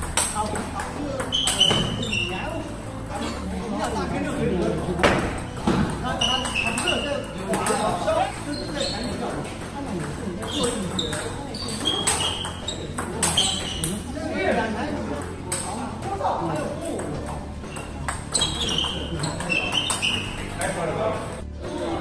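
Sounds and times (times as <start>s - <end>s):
voices in background: 0.0s - 22.0s.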